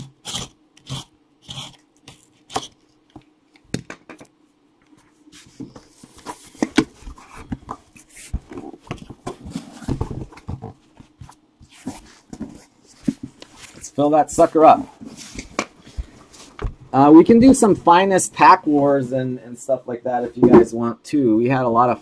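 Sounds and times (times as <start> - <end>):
box cutter slitting tape: 0.0 - 2.8
cardboard scraping and rustling: 5.3 - 16.8.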